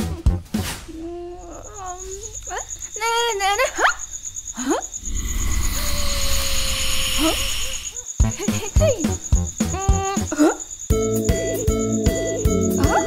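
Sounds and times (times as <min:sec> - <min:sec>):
crickets chirping: 0:00.0 - 0:13.0
frog-like calls: 0:01.3 - 0:13.0
hiss with held note: 0:05.0 - 0:08.0.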